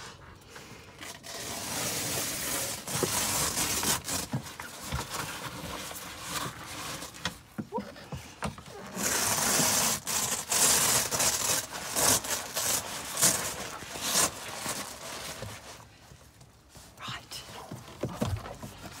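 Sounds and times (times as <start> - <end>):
canvas rustling and scraping: 0.0 - 19.0.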